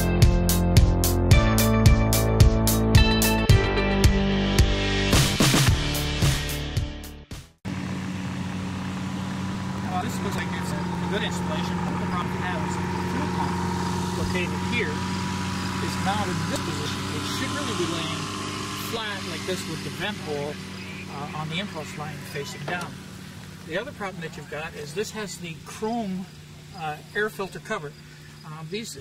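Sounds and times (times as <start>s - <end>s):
music: 0.0s - 7.6s
steady engine drone: 7.7s - 29.0s
people talking: 9.8s - 15.0s, 15.8s - 23.0s, 23.7s - 29.0s.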